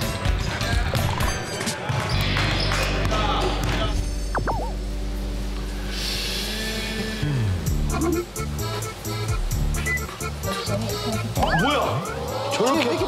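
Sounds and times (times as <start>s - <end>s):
background music low notes: 2.1s - 13.0s
warbling looping sound effect: 4.3s - 4.8s, 11.3s - 12.3s.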